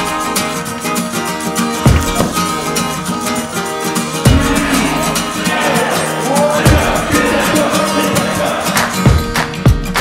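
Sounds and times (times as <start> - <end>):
guitar music with steady beat: 0.0 - 10.0.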